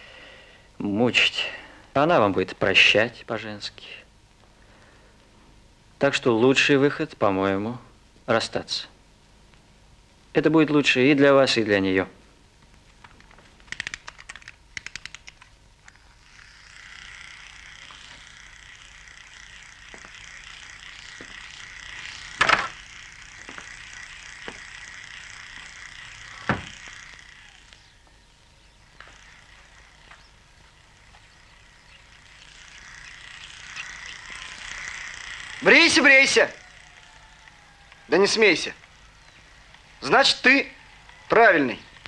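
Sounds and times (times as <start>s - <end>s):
rapid clicks: 12.6s - 42.0s
electric razor buzzing: 15.1s - 42.0s.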